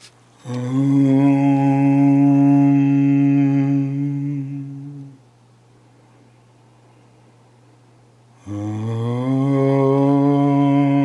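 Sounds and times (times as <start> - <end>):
man chanting a long low syllable: 0.4 - 5.2, 8.4 - 11.0.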